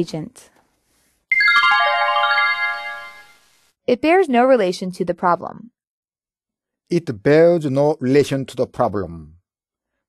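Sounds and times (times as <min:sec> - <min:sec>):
descending bell-like chime jingle: 0:01.3 - 0:03.4.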